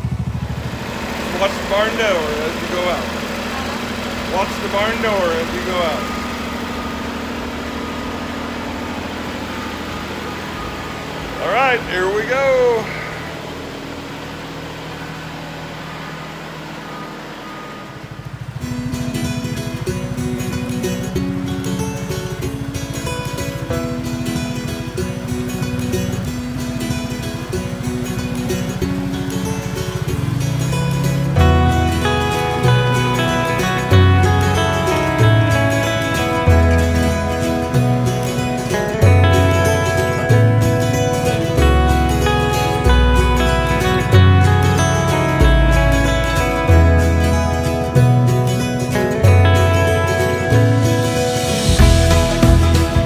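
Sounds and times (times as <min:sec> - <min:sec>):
country guitar music: 0:00.0 - 0:53.0
heavy bass line: 0:00.0 - 0:53.0
tractor diesel engine running: 0:00.0 - 0:53.0.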